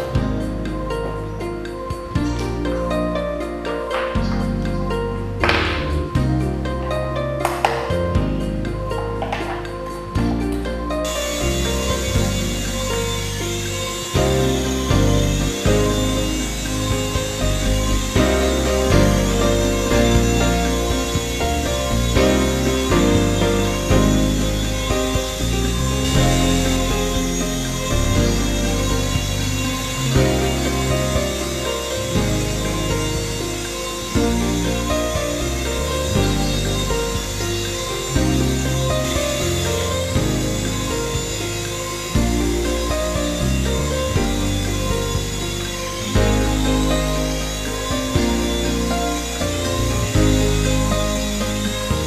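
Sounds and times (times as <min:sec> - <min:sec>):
background music with steady beat: 0:00.0 - 0:52.0
toy helicopter rotor whine: 0:11.0 - 0:52.0.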